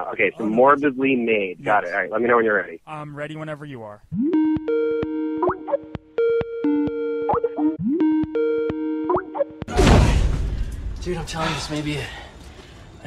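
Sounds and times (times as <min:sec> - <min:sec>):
loud crash sound effect: 0:09.7 - 0:11.0.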